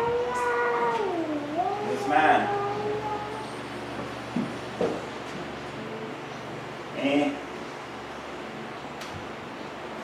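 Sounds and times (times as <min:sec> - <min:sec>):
high-pitched drawn-out vocal sound: 0:00.0 - 0:03.7.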